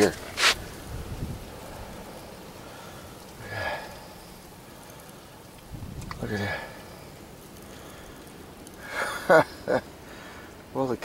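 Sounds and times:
wind and blowing snow hiss: 0.0s - 11.0s.

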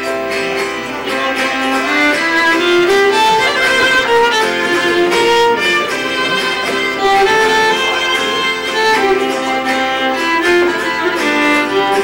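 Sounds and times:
fiddle playing folk tune: 0.0s - 12.0s.

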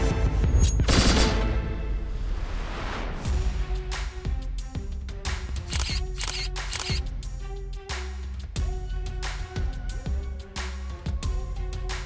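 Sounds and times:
dramatic background music: 0.0s - 12.0s
camera shutter clicks: 5.6s - 7.0s.

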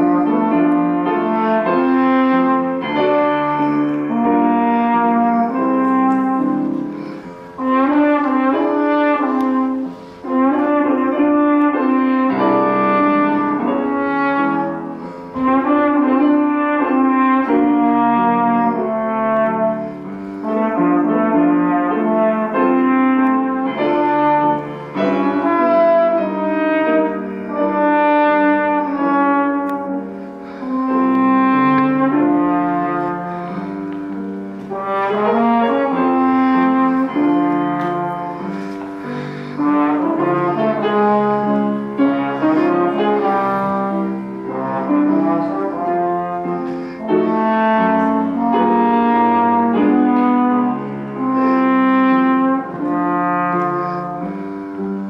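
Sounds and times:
piano accompaniment: 0.0s - 55.0s
trombone melody: 0.0s - 55.0s.

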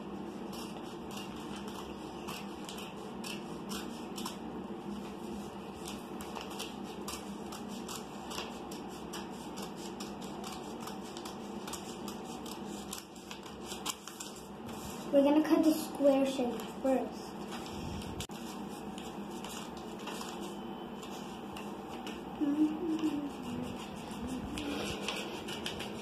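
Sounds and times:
scissors snipping paper: 0.4s - 4.4s, 5.0s - 14.5s, 22.8s - 26.0s.

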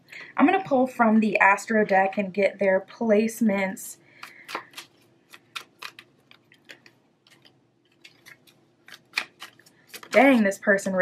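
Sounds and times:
cards being shuffled: 4.2s - 10.6s.

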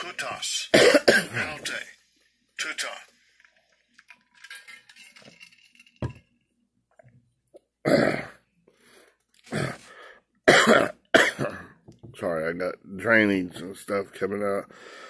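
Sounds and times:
man coughing: 0.7s - 1.6s, 7.8s - 8.4s, 10.5s - 11.8s.

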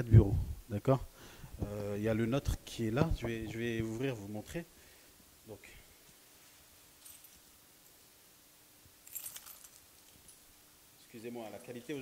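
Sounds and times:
keys jangling: 7.0s - 7.4s, 9.0s - 10.5s.

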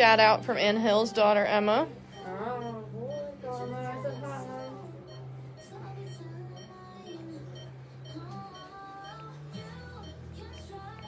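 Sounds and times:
background music: 0.0s - 11.0s
faint high beeps: 1.6s - 11.0s.

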